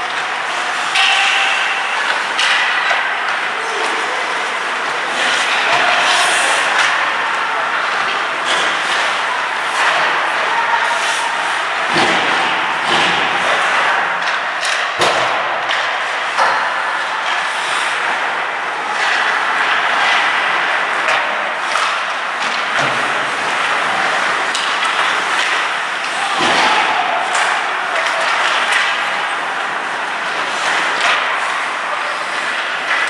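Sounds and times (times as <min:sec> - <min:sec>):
sticks and puck knocking boards: 0:00.0 - 0:03.5, 0:11.8 - 0:17.5, 0:18.1 - 0:33.0
echoing rink noise: 0:00.0 - 0:33.0
skates scraping ice: 0:00.0 - 0:33.0.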